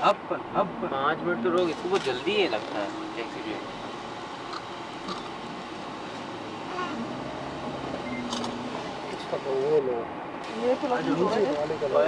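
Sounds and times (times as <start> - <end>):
people talking: 0.0 - 3.7.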